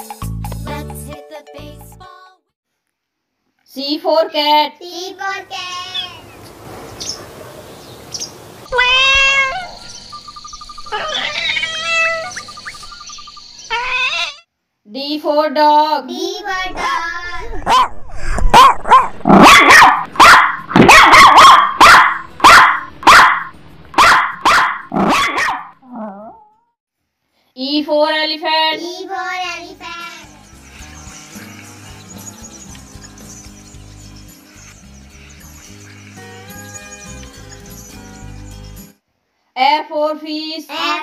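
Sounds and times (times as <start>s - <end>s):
kitten meowing: 8.7s - 9.9s, 10.9s - 12.3s
dog whining: 10.9s - 12.4s
dog barking: 17.6s - 25.8s.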